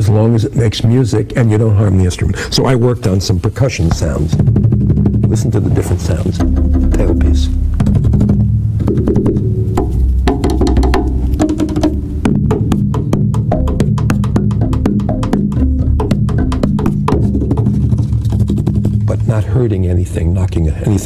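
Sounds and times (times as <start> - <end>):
low ringing bass strings: 3.8 - 20.4
taps on double bass body: 3.9 - 5.6, 6.2 - 19.2.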